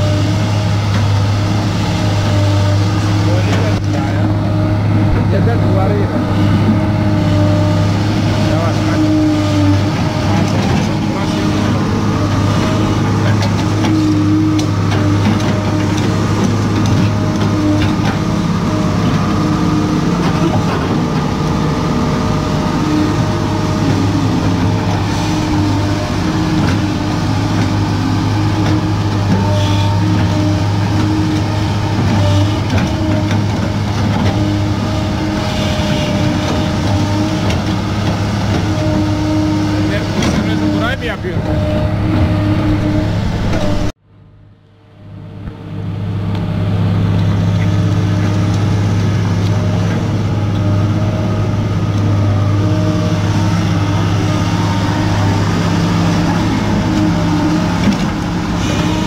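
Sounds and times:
diesel engine running under load: 0.0s - 59.0s.

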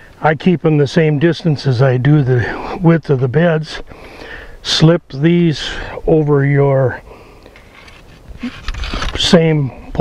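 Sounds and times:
metallic clicks and scrapes: 7.5s - 9.4s
metal legs sliding over stakes: 7.5s - 9.5s.

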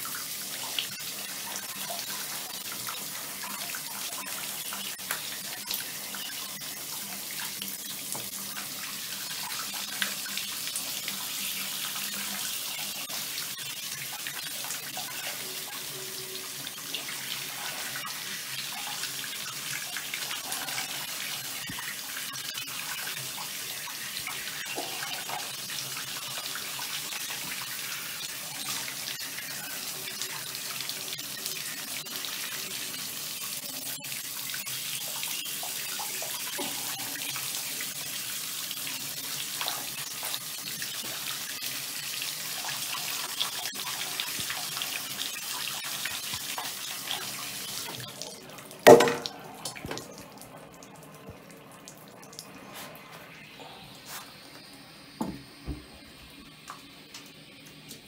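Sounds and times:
shower head spraying water: 48.9s - 50.0s.

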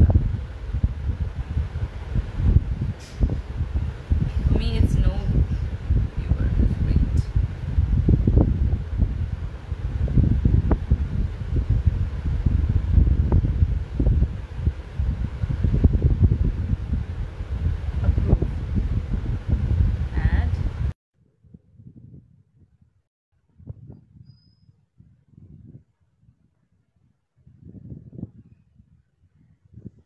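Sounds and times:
low rumbling air noise: 0.0s - 22.9s, 23.5s - 30.0s.

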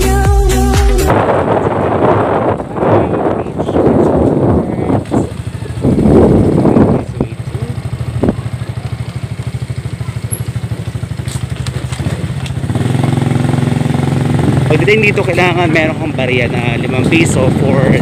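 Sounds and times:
loud rush of noise: 1.0s - 7.1s
small motorcycle engine running: 3.6s - 18.0s.

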